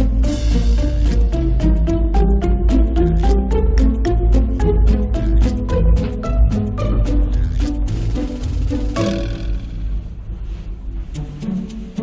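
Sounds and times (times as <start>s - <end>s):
musical note: 6.8s - 10.2s.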